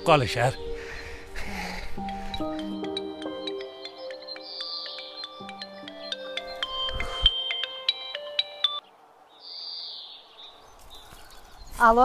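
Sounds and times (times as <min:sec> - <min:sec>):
phone ringtone: 0:02.0 - 0:08.8.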